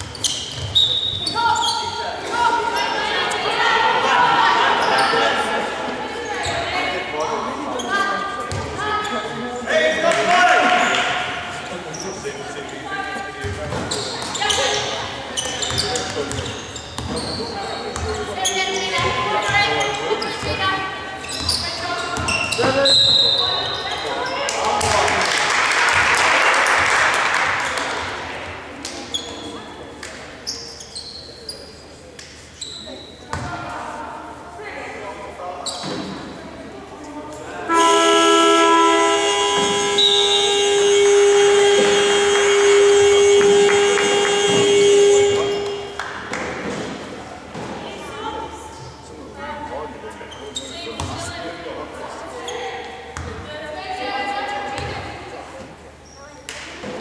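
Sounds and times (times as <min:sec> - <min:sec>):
shoes squeaking: 0:00.0 - 0:03.5, 0:11.6 - 0:24.5, 0:29.0 - 0:33.6, 0:35.6 - 0:36.2
basketball bouncing on court: 0:08.5 - 0:08.8, 0:15.6 - 0:17.4, 0:18.0 - 0:18.2, 0:33.3 - 0:33.6, 0:53.2 - 0:53.4
loud steady horn: 0:37.6 - 0:46.0
players shouting: 0:37.6 - 0:46.2.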